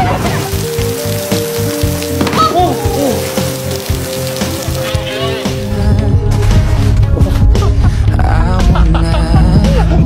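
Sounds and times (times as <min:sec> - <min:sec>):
rain on wet pavement: 0:00.0 - 0:06.0
soft music with held notes: 0:00.0 - 0:10.0.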